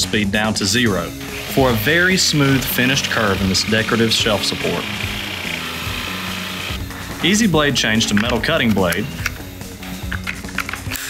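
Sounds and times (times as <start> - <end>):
jigsaw cutting wood: 1.2 - 6.8.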